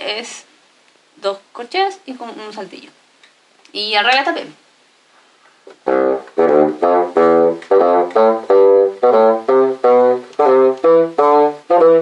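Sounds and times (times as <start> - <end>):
bassoon playing detached notes: 5.8 - 12.0.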